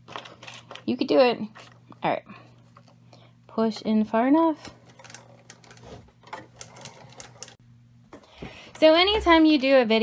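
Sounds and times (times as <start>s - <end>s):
hand crank turning with clicks: 4.7s - 7.6s.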